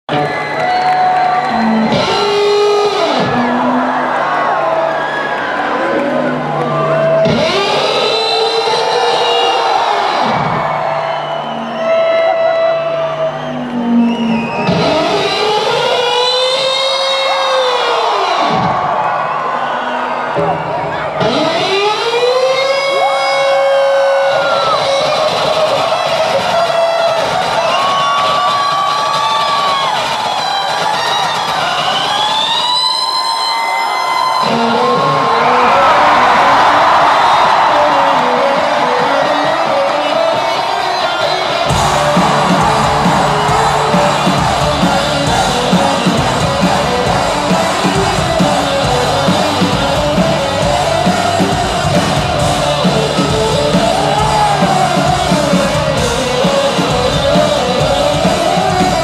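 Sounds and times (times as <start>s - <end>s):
crowd cheering and yelling: 0.0s - 59.0s
bass and drums: 0.1s - 4.2s, 6.7s - 11.6s, 24.1s - 33.3s, 41.5s - 59.0s
electric guitar sliding notes: 19.9s - 27.2s, 37.7s - 59.0s.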